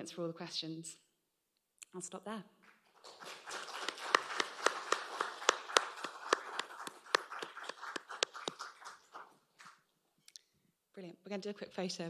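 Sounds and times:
audience applauding: 0:02.7 - 0:09.8.

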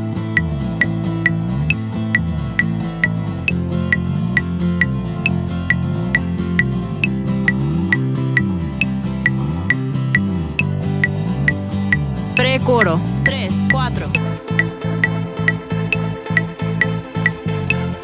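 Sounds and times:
metronome clicking: 0:00.0 - 0:18.0.

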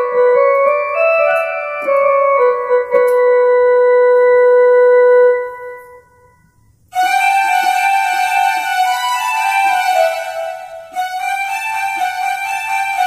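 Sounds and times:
keyboard playing folk tune: 0:00.0 - 0:06.1, 0:06.9 - 0:13.0.

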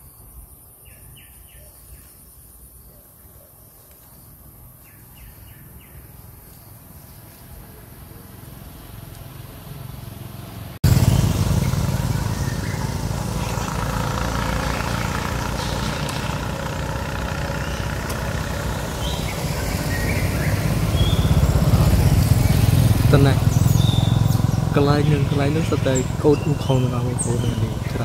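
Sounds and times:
quiet forest ambience: 0:00.0 - 0:10.5
motorbikes running: 0:07.2 - 0:28.0
car driving by: 0:08.0 - 0:28.0.

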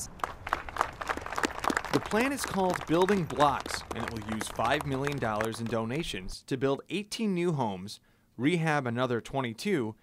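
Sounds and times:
crowd applauding: 0:00.0 - 0:06.1.

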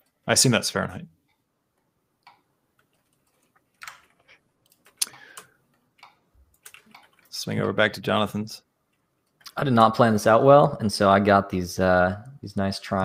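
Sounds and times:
computer mouse and keyboard clicks: 0:02.2 - 0:07.3.

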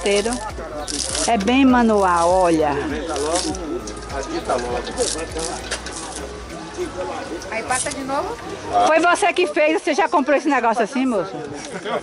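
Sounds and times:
music-like tones: 0:00.0 - 0:09.6.

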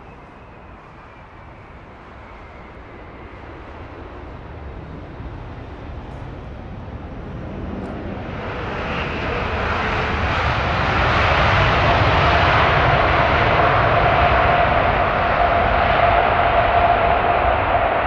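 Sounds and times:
jet engines roaring: 0:00.0 - 0:18.0
steady engine whine: 0:00.0 - 0:18.0.

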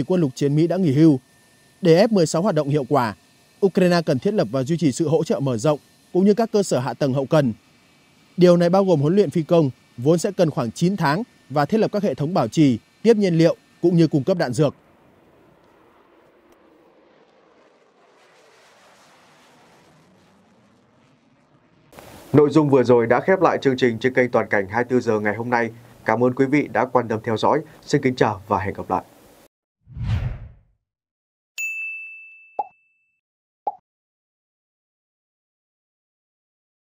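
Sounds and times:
faint jet engine noise: 0:00.0 - 0:29.5
high bell-like ding: 0:31.6 - 0:33.2.

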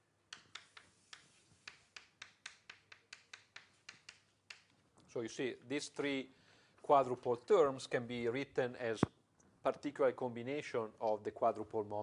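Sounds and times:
chalk tapping on blackboard: 0:00.3 - 0:04.7.

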